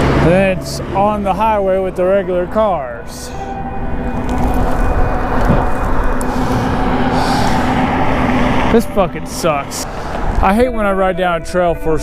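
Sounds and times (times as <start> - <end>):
droning hum: 0.0 - 12.0
wind rushing over microphone: 4.0 - 11.0.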